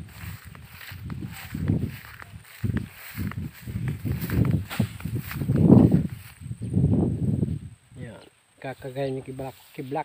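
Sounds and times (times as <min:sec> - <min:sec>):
grass stalks swishing: 0:00.0 - 0:06.4
footsteps through tall grass: 0:00.0 - 0:10.0.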